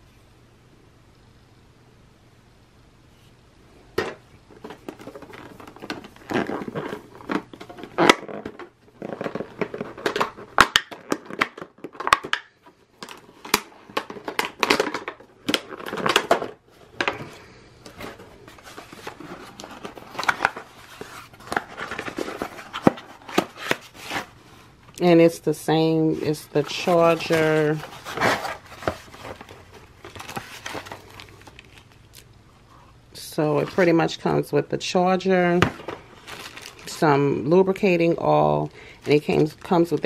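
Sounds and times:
packaging rustling and scraping: 4.5s - 24.8s, 25.9s - 32.1s, 35.4s - 37.2s, 39.0s - 40.0s.

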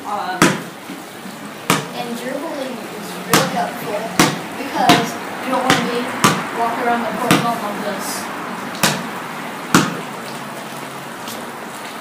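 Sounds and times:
basketball bouncing on concrete: 0.3s - 0.8s, 1.7s - 2.0s, 3.3s - 6.6s, 7.2s - 7.6s, 8.8s - 9.1s, 9.7s - 10.1s.

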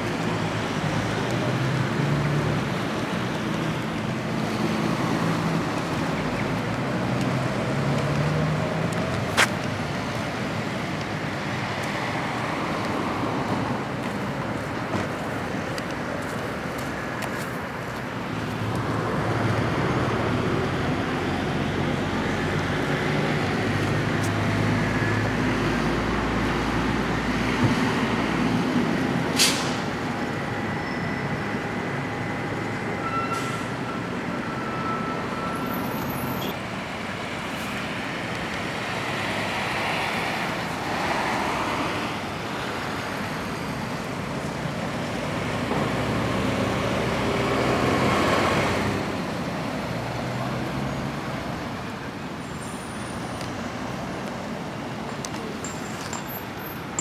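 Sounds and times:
vehicles passing: 0.0s - 57.0s.

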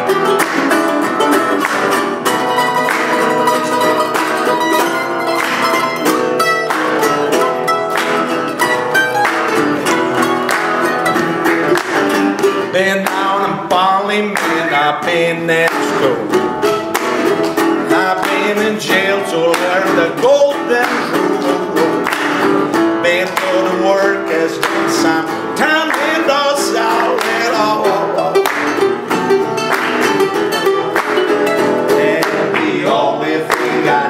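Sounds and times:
mandolin picked blues: 0.0s - 34.0s
man singing: 12.6s - 16.6s, 17.8s - 28.8s, 31.8s - 34.0s.

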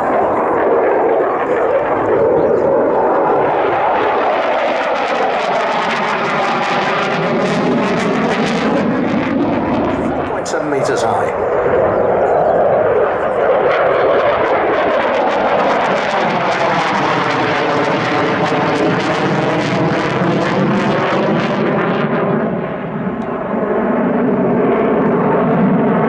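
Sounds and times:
jet flying overhead: 0.0s - 26.0s.

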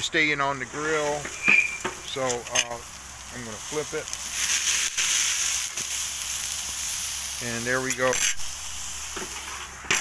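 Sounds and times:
steak sizzling on a grill: 0.0s - 10.0s.

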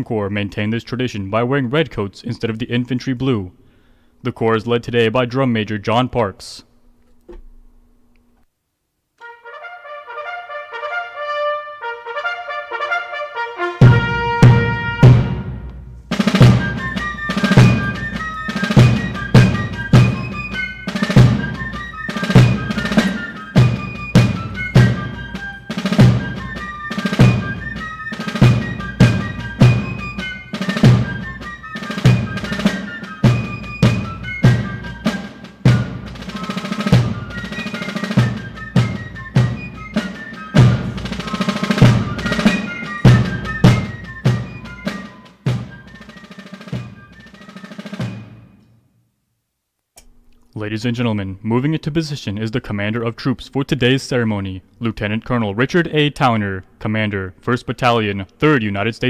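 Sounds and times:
fifes playing high melody: 9.2s - 48.3s
snare drums: 12.8s - 48.8s
bass drum striking: 13.8s - 18.2s.

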